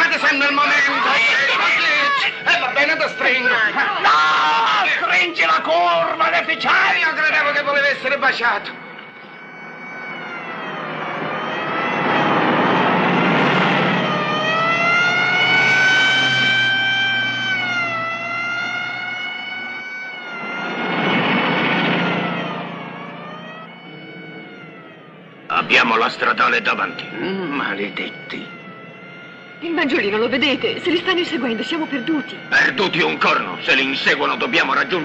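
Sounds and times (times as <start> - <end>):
police siren wailing: 0.0 - 35.0
cars speeding past: 8.7 - 27.0.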